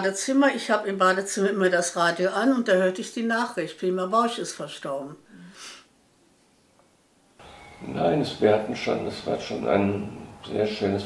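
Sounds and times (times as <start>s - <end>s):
faint room hiss: 0.0s - 11.0s
man speaking: 7.8s - 11.0s.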